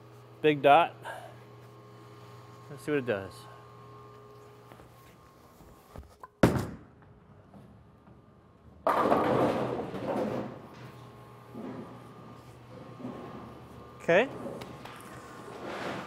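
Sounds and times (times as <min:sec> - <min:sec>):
bowling ball thud on lane: 0:08.8 - 0:10.6
bowling pins crashing: 0:08.8 - 0:10.7.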